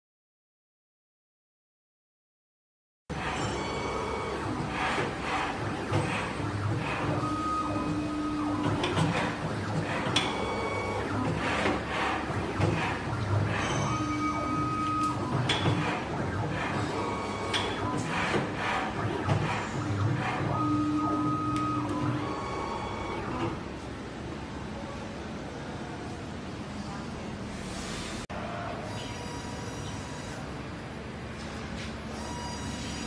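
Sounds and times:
machine motor whine: 3.1s - 23.7s.

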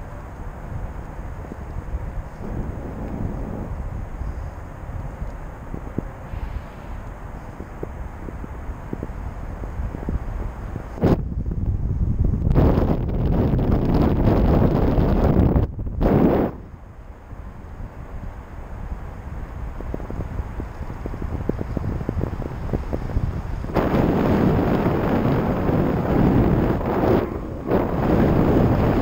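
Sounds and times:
wind buffeting microphone: 0.0s - 29.0s.

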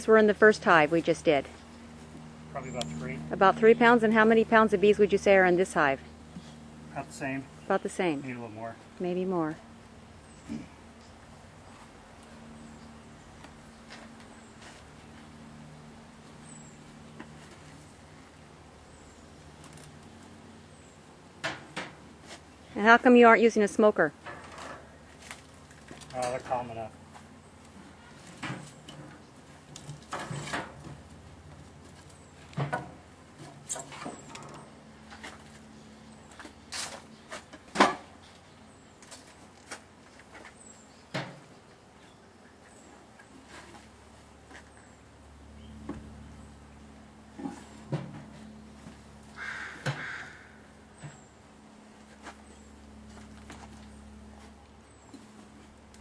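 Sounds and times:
steady low hum: 0.0s - 56.0s
wooden hive parts scraping and knocking: 28.0s - 31.1s.

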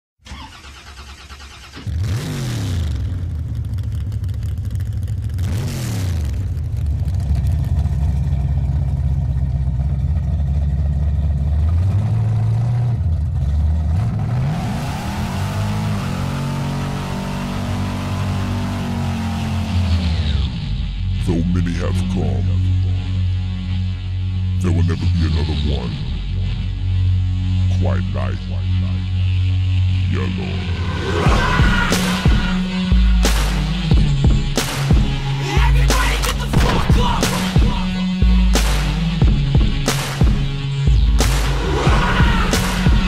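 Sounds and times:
car engine revving: 0.3s - 43.0s.

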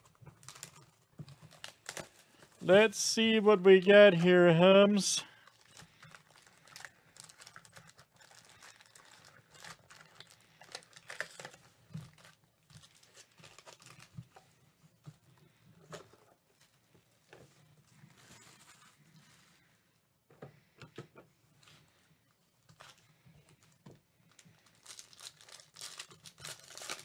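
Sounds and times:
foil card packs crinkling: 0.2s - 14.4s, 23.6s - 27.0s.

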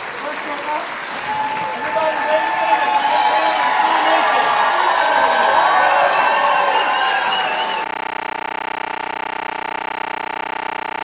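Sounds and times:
audience applauding and cheering: 0.0s - 7.9s
buzzing hum with even tones: 7.8s - 11.0s.

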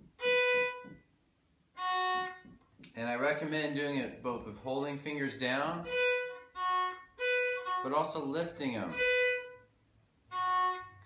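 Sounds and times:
fiddle bowing separate notes: 0.0s - 1.1s, 1.7s - 2.6s, 5.7s - 11.0s.

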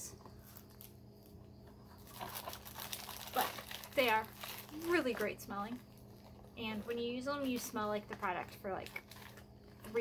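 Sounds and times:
plastic wrap crinkling: 0.4s - 10.0s.

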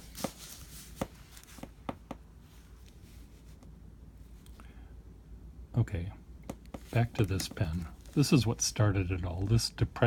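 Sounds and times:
paper rustling: 0.0s - 1.7s, 6.8s - 8.6s.

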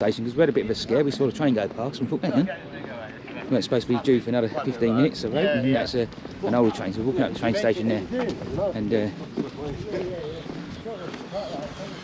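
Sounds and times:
background talk: 0.0s - 12.0s.

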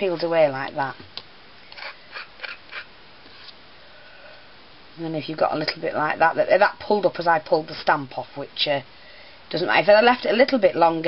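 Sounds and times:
craft knife scratching wax: 1.7s - 3.6s.

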